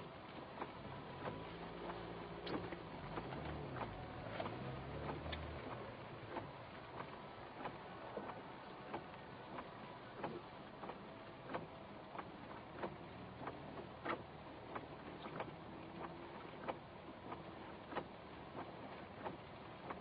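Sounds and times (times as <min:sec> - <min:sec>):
faint steady background noise: 0:00.0 - 0:20.0
ticking inside car cabin: 0:00.0 - 0:20.0.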